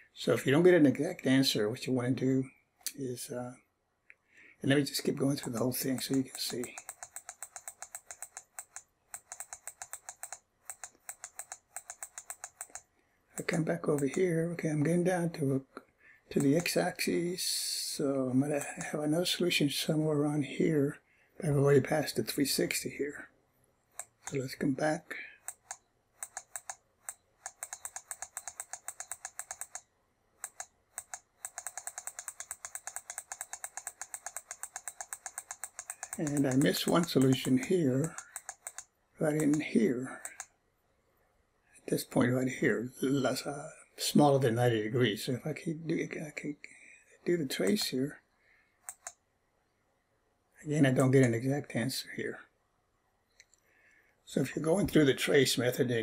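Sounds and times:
rapid mouse clicks: 0:05.0 - 0:14.3, 0:16.3 - 0:17.2, 0:18.5 - 0:19.0, 0:23.9 - 0:24.5, 0:25.4 - 0:40.6, 0:47.6 - 0:48.0, 0:48.8 - 0:49.2.

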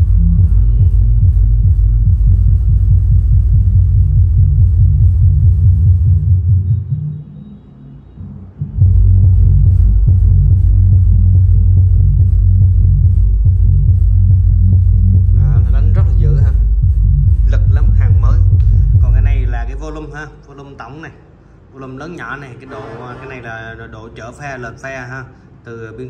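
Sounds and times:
loud bass-heavy music: 0:00.0 - 0:20.0.

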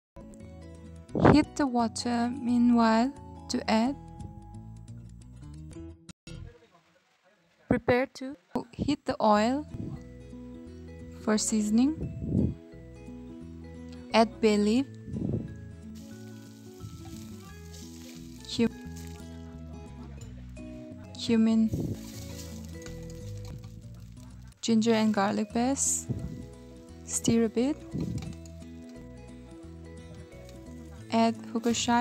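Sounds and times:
background music: 0:00.2 - 0:06.6, 0:08.6 - 0:32.0
faint oil sizzle: 0:16.0 - 0:19.5
leaf crackling in hot oil: 0:16.0 - 0:19.7, 0:21.6 - 0:29.1, 0:30.2 - 0:32.0.

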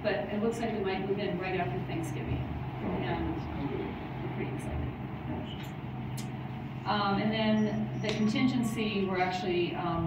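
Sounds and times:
woman speaking: 0:00.0 - 0:05.6, 0:06.8 - 0:10.0
low room hum: 0:00.0 - 0:10.0.

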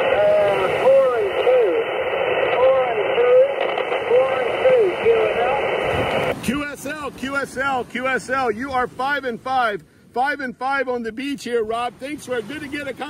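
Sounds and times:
voice over radio speaker: 0:00.0 - 0:09.0
radio band noise hiss: 0:00.0 - 0:09.8.

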